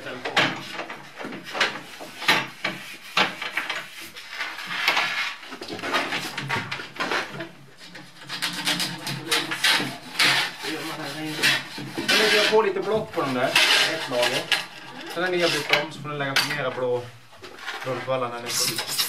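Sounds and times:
rough scraping rub on ski base: 0:09.2 - 0:14.5.

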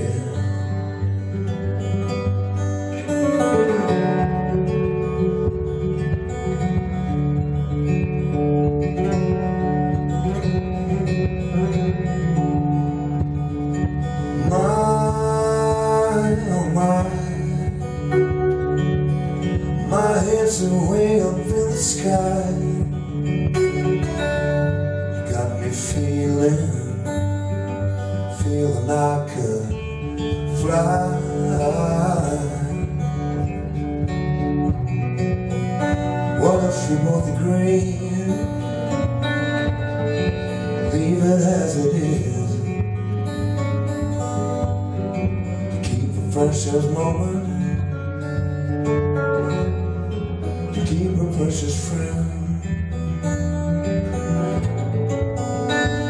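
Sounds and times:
acoustic guitar strummed and picked: 0:00.0 - 0:56.0.

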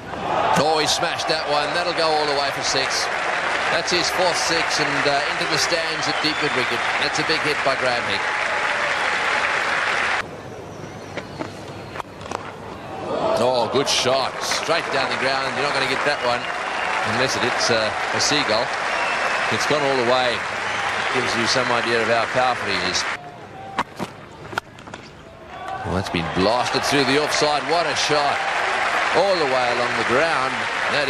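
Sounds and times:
stadium crowd applauding and cheering: 0:00.0 - 0:10.2, 0:13.0 - 0:23.7, 0:25.5 - 0:31.0.

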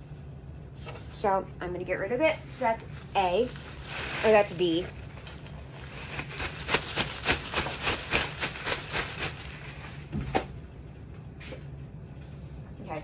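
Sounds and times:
plastic bag crinkling: 0:02.5 - 0:10.1.

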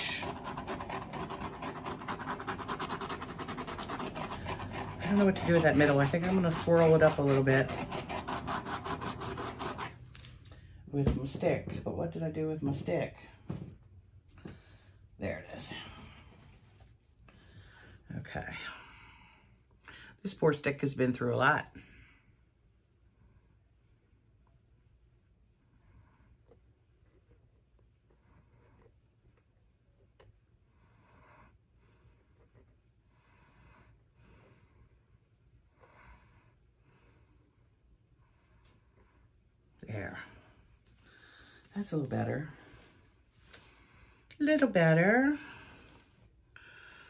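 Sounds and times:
butane torch flame hissing: 0:00.0 - 0:10.0
stick scraping paint on canvas: 0:00.0 - 0:10.2.

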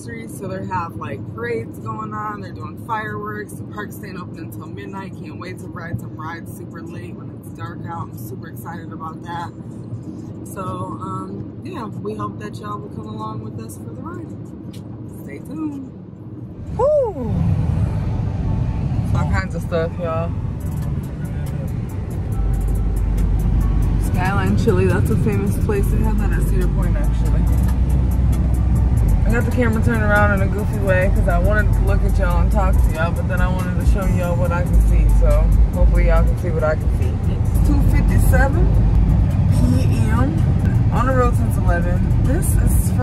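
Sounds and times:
car cabin road rumble: 0:00.0 - 0:43.0
deep steady bass note: 0:16.5 - 0:43.0
music with ticking beat: 0:20.6 - 0:39.5.

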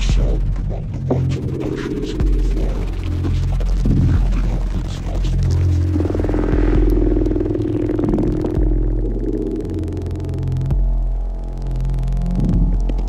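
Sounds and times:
deep bass drone tones: 0:00.0 - 0:13.0
held mid-range tone: 0:00.0 - 0:13.0.

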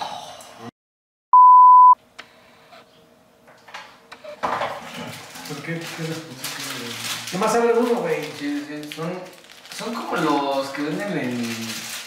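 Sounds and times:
censor bleep: 0:01.3 - 0:02.0.

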